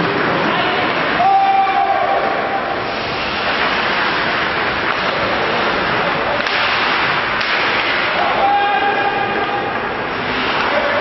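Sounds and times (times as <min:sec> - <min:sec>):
ice hockey rink noise: 0:00.0 - 0:11.0.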